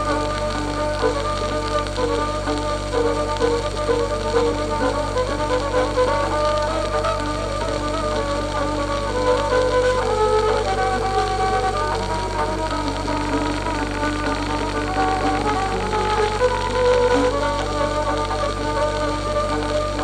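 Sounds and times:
piano: 0:00.0 - 0:20.0
record surface hiss: 0:00.0 - 0:20.0
violin melody: 0:00.0 - 0:20.0
tabla: 0:06.6 - 0:20.0.

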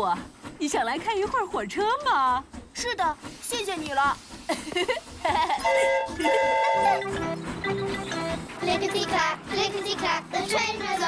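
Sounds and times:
cheerful background music: 0:05.3 - 0:11.0
cartoon steam whistle: 0:05.6 - 0:07.4.

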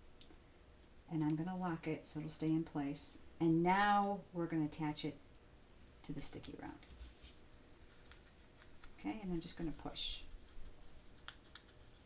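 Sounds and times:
faint rustling of fabric: 0:06.2 - 0:12.0.

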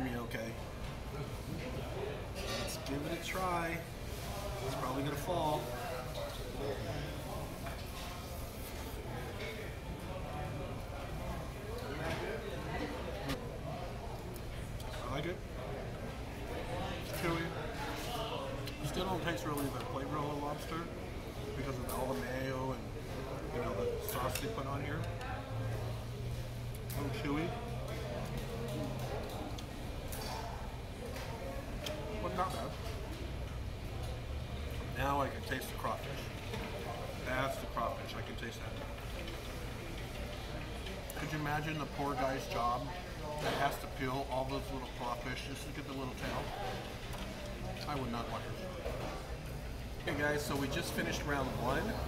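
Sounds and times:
faint background voices: 0:00.0 - 0:52.0.

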